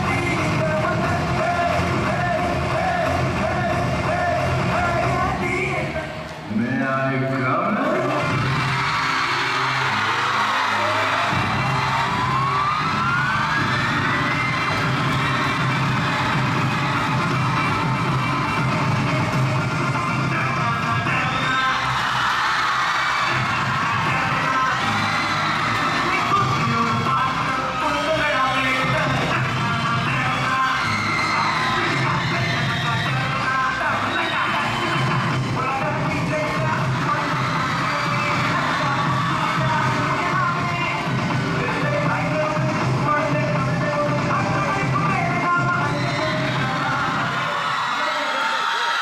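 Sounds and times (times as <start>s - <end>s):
loud dance music: 0.0s - 49.0s
audience cheering and whooping: 7.6s - 49.0s.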